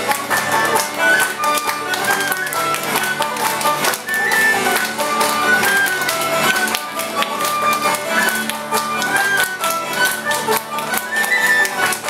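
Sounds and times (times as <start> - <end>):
hands clapping along: 0.0 - 12.0
strummed string instruments: 0.0 - 12.0
tin whistle melody: 0.4 - 6.7, 7.3 - 12.0.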